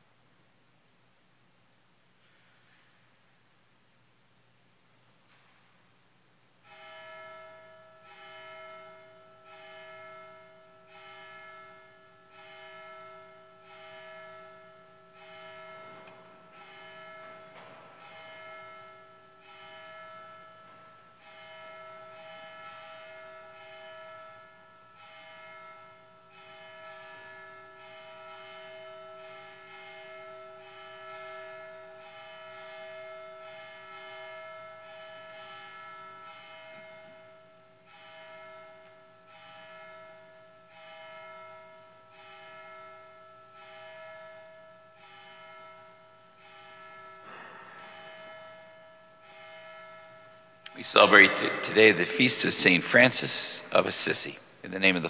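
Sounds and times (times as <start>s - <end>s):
church bells ringing a tune: 6.6s - 55.0s.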